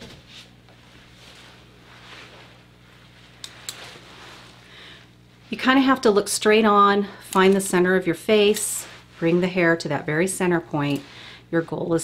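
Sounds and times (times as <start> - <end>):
rustle of hair: 0.0 - 6.6, 7.4 - 12.0
faint steady hum: 0.0 - 12.0.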